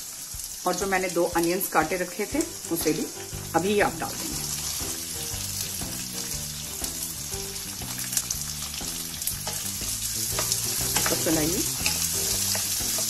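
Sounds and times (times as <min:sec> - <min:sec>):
onions sizzling in oil: 0:00.0 - 0:13.0
spatula scraping pan: 0:09.4 - 0:13.0.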